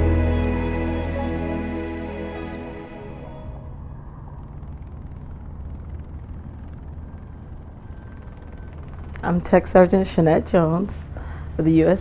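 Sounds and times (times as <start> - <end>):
music: 0.0 - 3.7
low rumble of background noise: 0.0 - 12.0.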